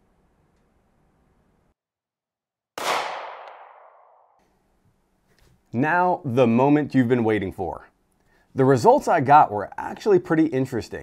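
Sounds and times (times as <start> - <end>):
pistol shot: 2.8 - 4.4.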